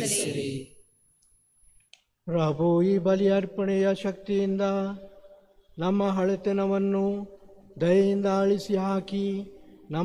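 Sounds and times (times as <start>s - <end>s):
voices echoing in church: 0.0s - 0.8s, 2.2s - 10.0s.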